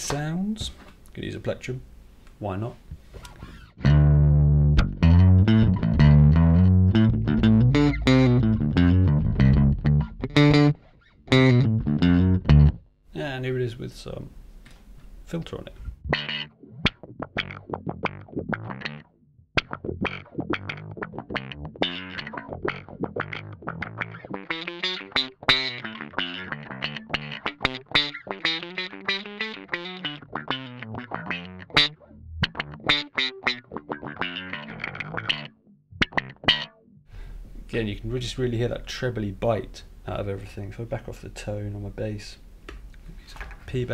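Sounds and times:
distorted bass guitar riff with wah: 3.4s - 12.8s, 16.0s - 37.3s.

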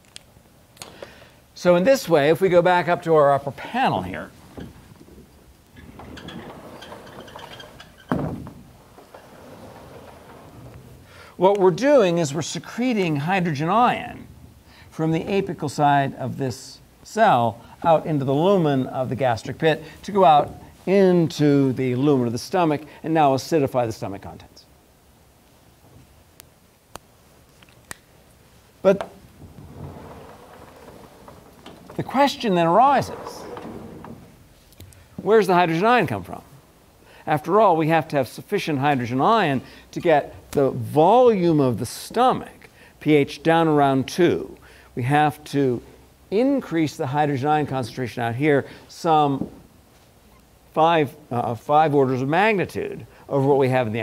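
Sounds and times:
whiteboard panels rolling and clattering: 4.5s - 11.2s, 29.0s - 34.6s.

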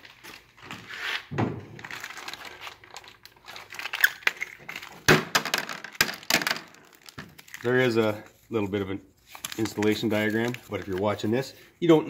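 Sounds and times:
plastic bag crinkling: 1.8s - 8.6s, 9.2s - 11.5s.

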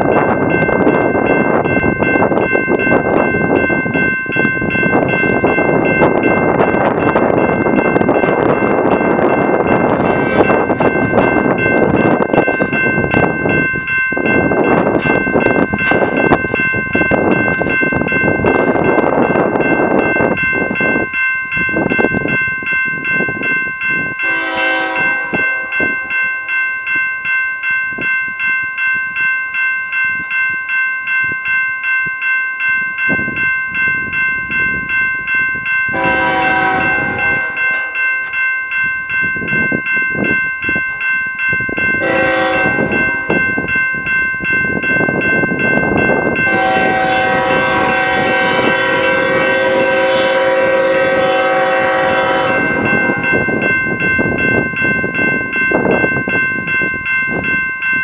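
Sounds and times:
crossing bell dinging: 0.0s - 58.0s
locomotive air horn: 10.0s - 10.5s, 24.2s - 25.4s, 35.9s - 37.7s, 42.0s - 42.9s, 46.5s - 52.8s.

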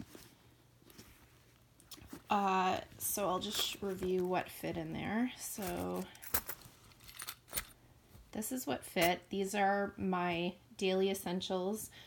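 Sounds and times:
coins clinking: 5.6s - 7.8s
keys jangling: 5.7s - 7.8s.

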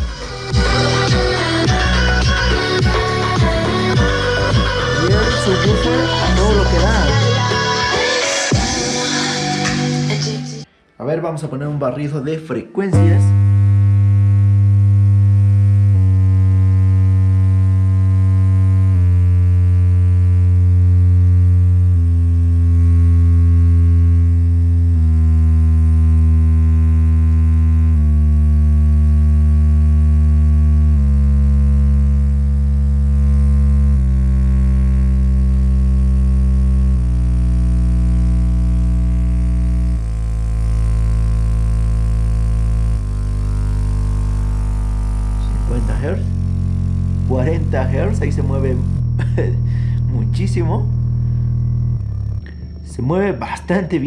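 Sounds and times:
low test tones stepping down: 0.0s - 9.0s, 12.9s - 54.0s.

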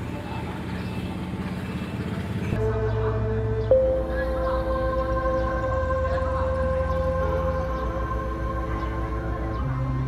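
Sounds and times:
road rumble: 0.0s - 10.0s
vehicle engine humming: 0.0s - 10.0s
background music sustained notes: 2.6s - 10.0s.

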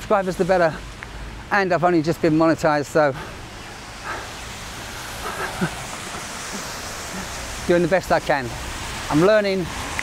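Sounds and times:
drizzle hissing on wet road: 0.0s - 10.0s.

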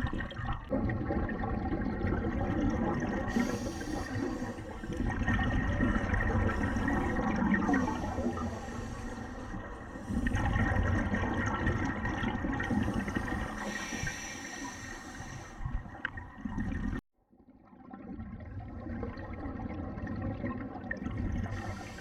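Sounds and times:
scuba regulator bubbles gurgling: 0.0s - 17.0s, 17.6s - 22.0s.

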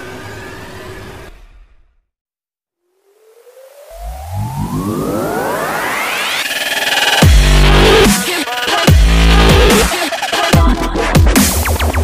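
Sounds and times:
rising synth sweep: 2.8s - 8.1s
electronic dance music: 4.0s - 12.0s.

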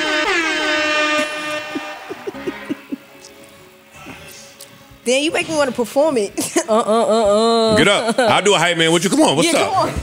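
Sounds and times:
air horn blasts: 0.0s - 2.2s.

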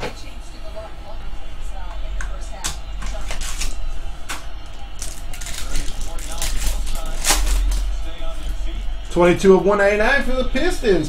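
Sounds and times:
steady low hum: 0.0s - 11.0s
foil wrapper crinkling and tearing: 5.0s - 7.9s.

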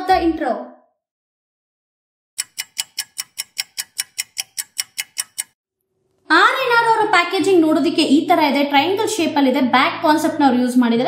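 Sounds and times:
rapid even ticking: 2.4s - 5.6s.

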